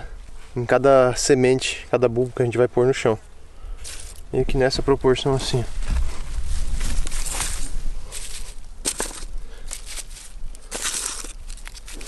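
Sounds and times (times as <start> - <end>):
dry straw rustling and crackling: 3.8 - 4.3, 5.3 - 12.0.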